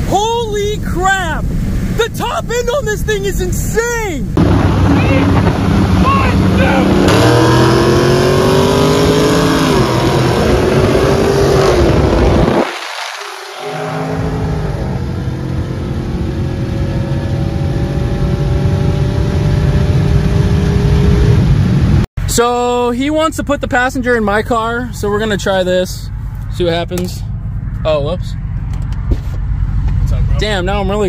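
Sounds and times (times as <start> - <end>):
car engines accelerating hard: 4.4 - 22.1.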